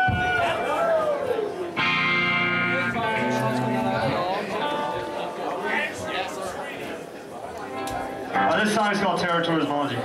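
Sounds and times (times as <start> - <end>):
electric guitar chord ringing: 1.8 - 5.5, 7.7 - 9.0
electric guitar sliding tones: 1.8 - 5.5.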